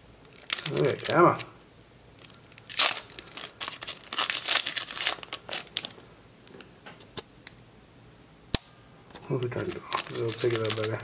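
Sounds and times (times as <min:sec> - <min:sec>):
foil wrapper crinkling: 0:00.2 - 0:01.5, 0:02.2 - 0:06.0, 0:09.3 - 0:11.0.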